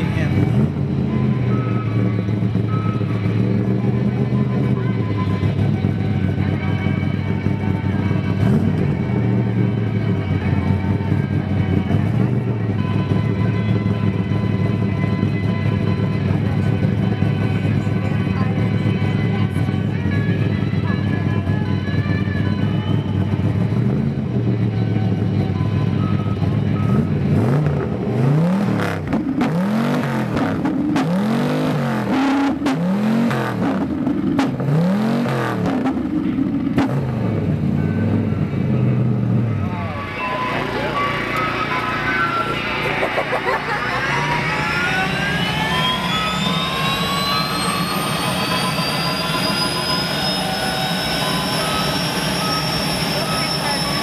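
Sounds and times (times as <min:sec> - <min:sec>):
car engine idling and revving: 0:00.0 - 0:54.0.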